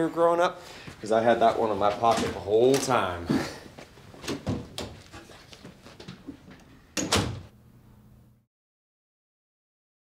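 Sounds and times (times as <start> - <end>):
low room hum: 0.1 - 8.5
door thud: 7.0 - 7.5.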